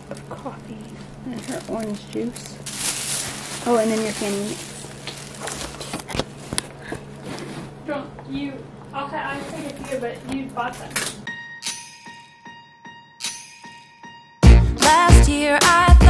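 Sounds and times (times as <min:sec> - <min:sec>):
plastic bags rustling: 0:00.0 - 0:07.8
soft evenly spaced strikes: 0:11.3 - 0:12.6, 0:13.2 - 0:14.2
bell-like chime tones: 0:11.3 - 0:14.4.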